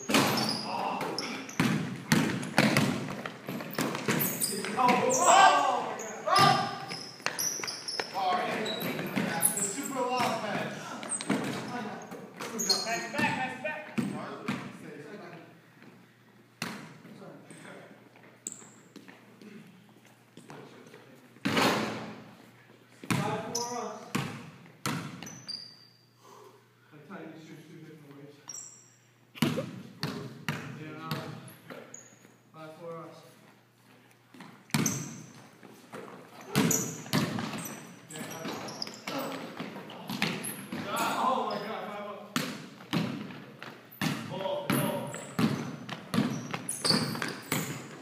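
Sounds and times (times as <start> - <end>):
basketball bouncing on hardwood floor: 1.5 - 4.3, 29.4 - 31.4, 36.5 - 37.8, 42.4 - 48.0
players' voices and shouts: 4.4 - 6.9.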